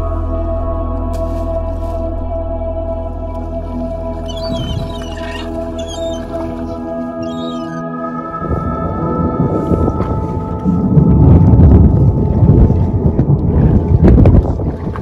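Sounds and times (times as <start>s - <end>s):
sustained ambient music: 0.0s - 15.0s
wind and sea noise: 3.1s - 15.0s.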